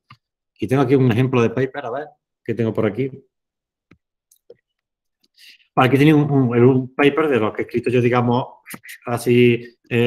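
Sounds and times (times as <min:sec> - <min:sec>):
man speaking: 0:05.8 - 0:10.0.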